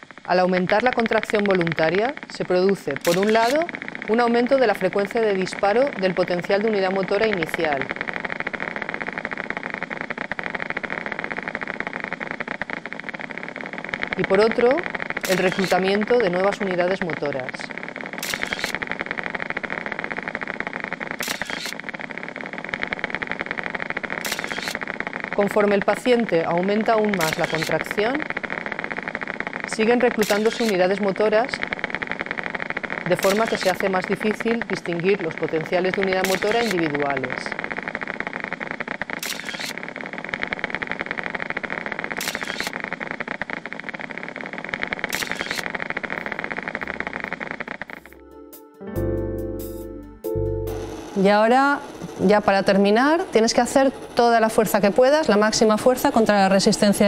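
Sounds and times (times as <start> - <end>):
bursts of hiss: 0.0 - 48.2
rapid crackle of clicks: 0.0 - 48.2.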